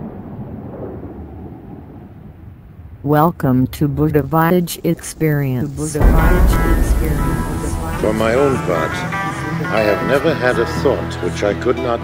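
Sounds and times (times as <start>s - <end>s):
low rumble: 5.9s - 9.3s.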